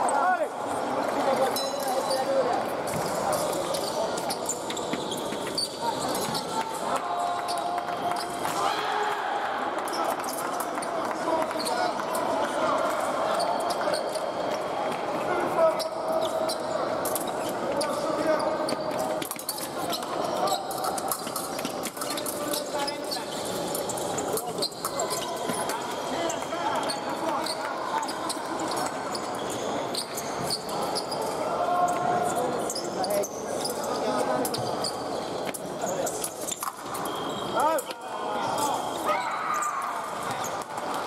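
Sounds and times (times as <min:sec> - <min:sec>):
chatter of many voices echoing: 0:00.0 - 0:41.0.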